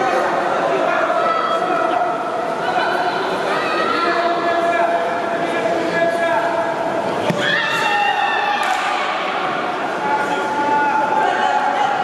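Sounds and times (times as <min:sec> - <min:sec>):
hubbub of voices: 0:00.0 - 0:12.0.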